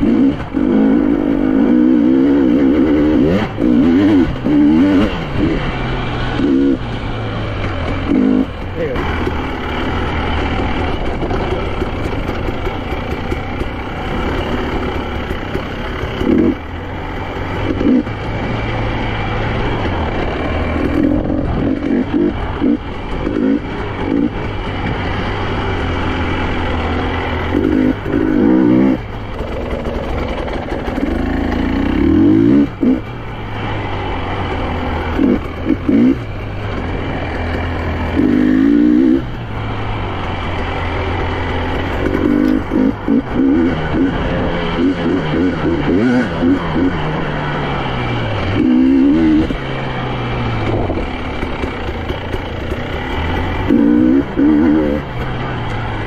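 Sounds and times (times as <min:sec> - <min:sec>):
two-stroke engine revving: 0:00.0 - 0:56.0.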